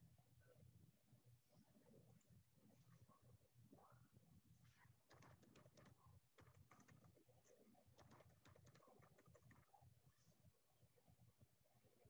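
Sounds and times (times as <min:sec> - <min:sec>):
typing on computer keyboard: 0:05.1 - 0:07.2, 0:08.0 - 0:09.7.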